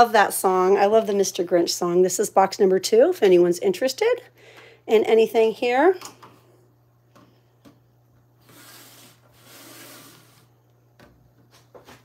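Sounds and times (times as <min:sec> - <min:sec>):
plastic case scraping on tabletop: 0:08.4 - 0:10.5.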